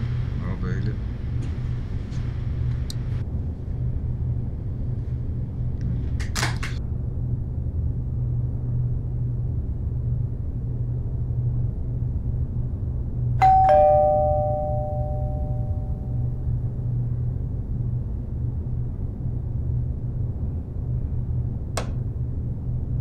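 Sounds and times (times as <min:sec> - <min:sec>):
steady low hum: 0:00.0 - 0:23.0
two-tone doorbell chime: 0:13.4 - 0:16.3.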